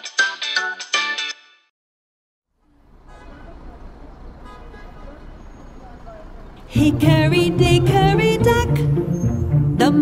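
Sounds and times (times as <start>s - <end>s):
low traffic rumble: 2.5s - 9.8s.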